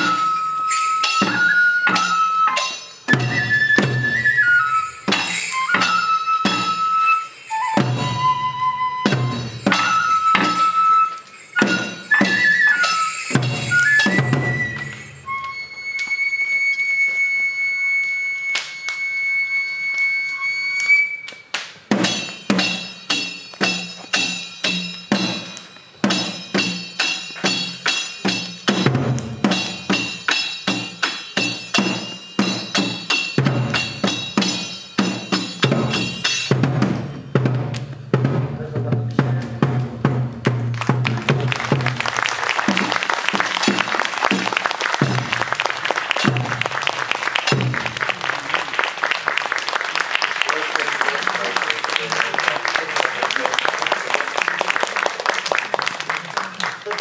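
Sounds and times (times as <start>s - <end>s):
small hand cymbals: 0.0s - 15.7s, 20.0s - 38.0s
transverse flute note: 0.0s - 21.4s
taiko drum beat: 7.8s - 10.7s, 13.3s - 14.9s, 21.9s - 48.2s.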